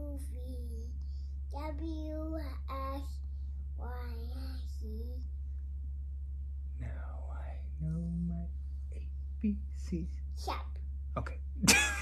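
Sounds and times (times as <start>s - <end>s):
girl singing: 0.0s - 3.2s, 3.8s - 5.2s
steady low hum: 0.0s - 12.0s.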